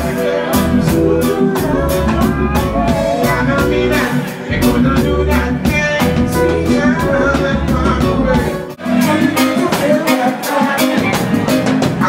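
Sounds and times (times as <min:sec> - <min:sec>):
electric bass: 0:00.0 - 0:09.8
drum kit beat: 0:00.0 - 0:12.0
guitar: 0:00.0 - 0:12.0.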